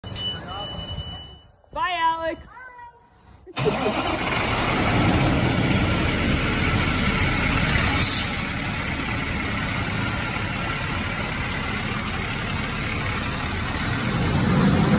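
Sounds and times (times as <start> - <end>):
fire engine diesel engine running: 3.6 - 14.9
short air hisses: 7.9 - 8.5.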